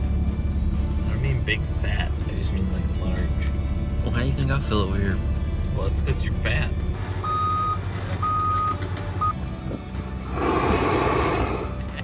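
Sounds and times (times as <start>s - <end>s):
backup alarm beeping: 7.2s - 9.4s.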